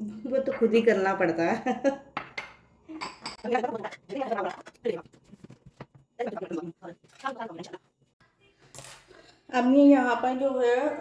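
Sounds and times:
ceramic bowls clinking: 2.2s - 4.7s.

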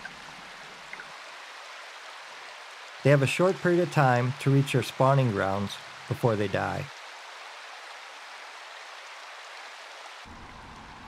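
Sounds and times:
stream water running over gravel: 0.0s - 10.6s.

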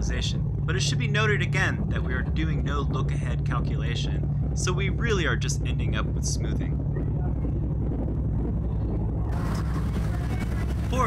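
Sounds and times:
churning wake water: 0.0s - 11.0s
ferry engines droning: 0.0s - 11.0s.

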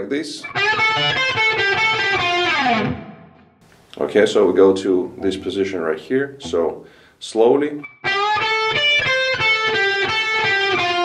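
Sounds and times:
electric guitar blues fill: 0.4s - 3.6s, 7.8s - 11.0s.

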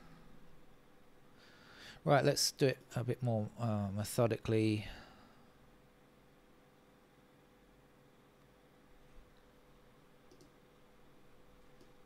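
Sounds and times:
faint steady hum: 0.0s - 12.0s
computer mouse clicks: 10.3s - 10.8s, 11.8s - 12.0s.

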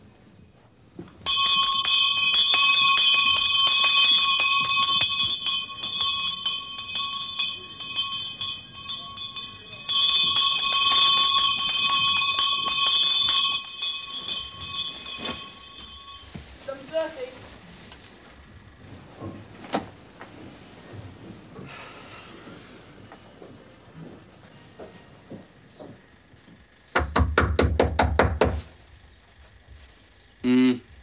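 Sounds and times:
electric bell ringing: 1.2s - 17.2s.

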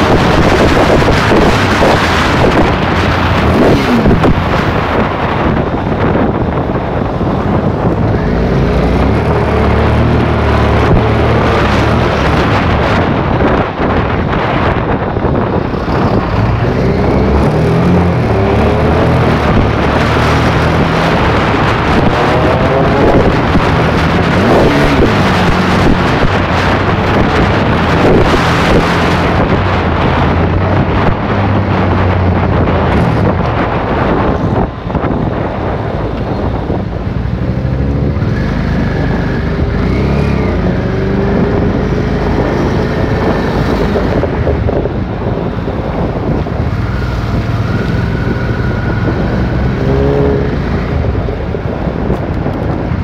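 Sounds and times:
car engine accelerating: 0.0s - 53.0s
road noise: 0.0s - 53.0s
wind buffeting on microphone: 0.0s - 53.0s.

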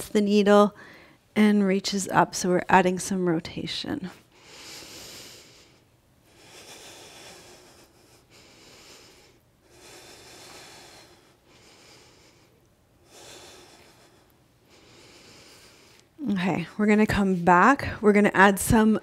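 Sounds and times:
woman breathing slowly: 0.8s - 1.3s, 4.1s - 16.2s.

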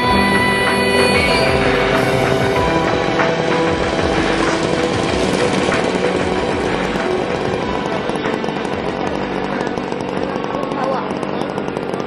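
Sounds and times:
background music: 0.0s - 11.2s
model plane engine running: 0.0s - 12.0s.

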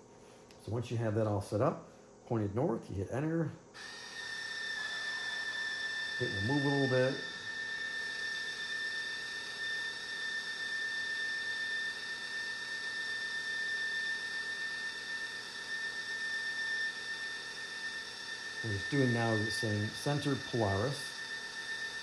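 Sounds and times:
high-pitched motor whine: 3.8s - 22.0s.

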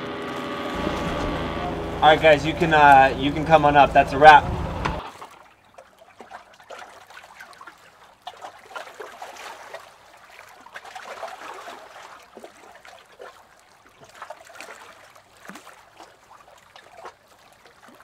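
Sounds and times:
pool water bubbling and trickling: 0.0s - 18.0s.

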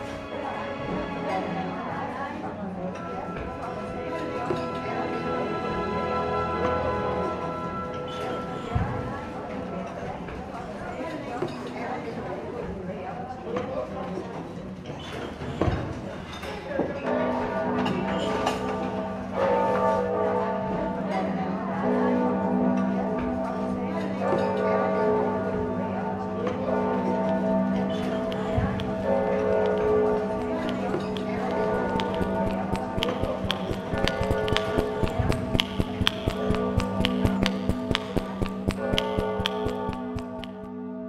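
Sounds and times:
clock bell tolling: 27.2s - 40.6s
quick irregular taps: 28.0s - 40.7s
soft music: 28.0s - 40.8s.

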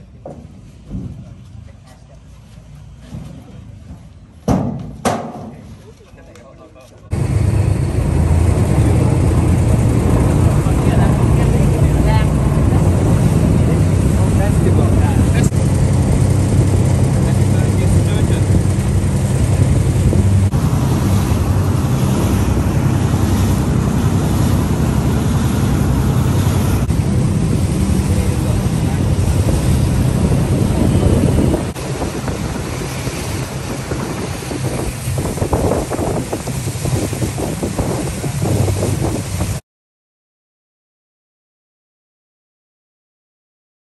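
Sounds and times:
boat engine running: 7.1s - 39.6s
water rushing past hull: 7.1s - 39.6s
wind buffeting microphone: 7.1s - 39.6s.

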